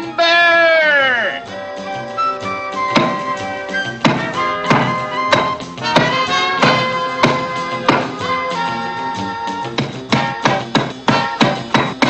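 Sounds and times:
playful orchestral music: 0.0s - 11.8s
axe chopping into tree trunk: 3.0s - 3.3s, 4.0s - 8.1s.

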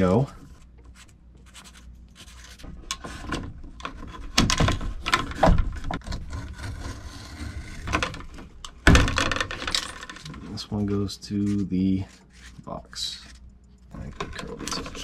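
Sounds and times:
cable scraping on plastic and wood: 2.2s - 8.6s.

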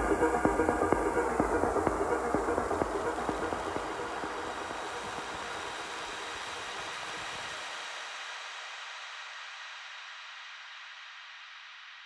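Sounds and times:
electronic dance beat: 0.0s - 5.8s.

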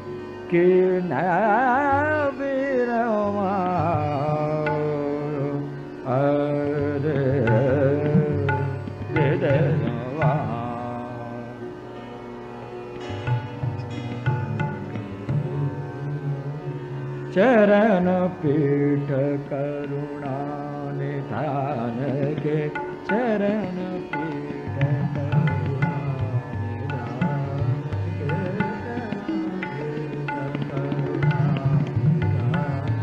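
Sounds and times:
man singing classical vocal: 0.0s - 12.0s, 13.3s - 33.0s
harmonium: 0.0s - 33.0s
tanpura drone: 0.0s - 33.0s.

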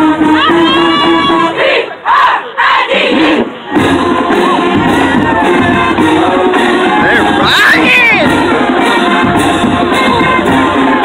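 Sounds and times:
marching band playing: 0.0s - 11.0s
band members shouting a chant: 0.1s - 8.8s.

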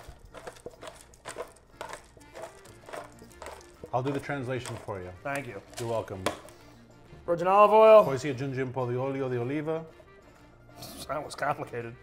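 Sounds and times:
pepper grinder cracking peppercorns: 0.0s - 6.6s
faint background music: 0.0s - 12.0s.

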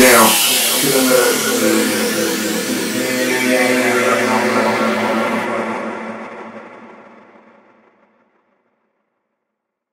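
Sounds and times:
held synth chords: 0.0s - 6.7s.

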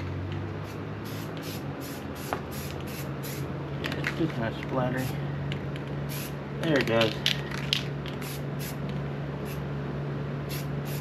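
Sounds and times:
steady low hum: 0.0s - 11.0s
spray can hissing bursts: 0.6s - 3.5s, 6.1s - 6.4s, 8.1s - 8.8s, 10.5s - 11.0s.

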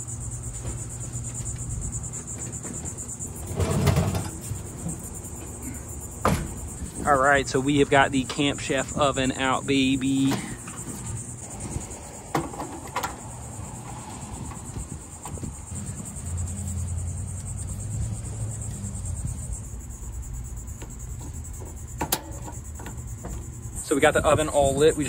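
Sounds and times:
crickets chirring: 0.0s - 25.0s.

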